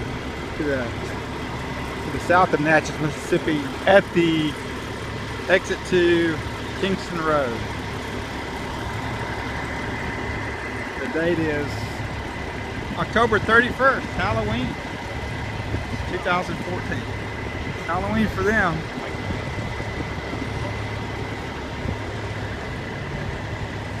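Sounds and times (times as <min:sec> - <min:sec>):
diesel truck engine idling: 0:00.0 - 0:24.0.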